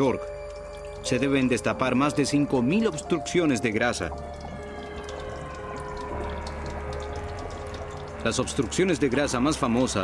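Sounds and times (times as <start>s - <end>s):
drone-like music tones: 0.0s - 10.0s.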